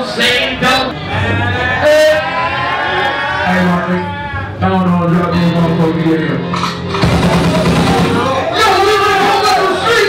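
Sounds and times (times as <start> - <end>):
man rapping through pa: 8.2 - 10.0.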